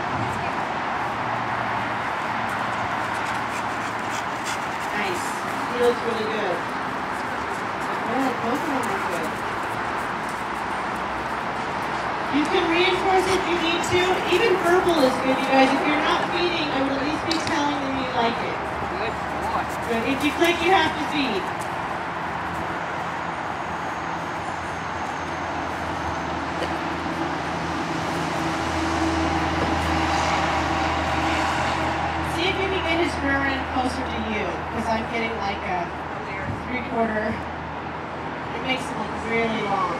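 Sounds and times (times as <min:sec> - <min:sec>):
steady background noise: 0:00.0 - 0:39.9.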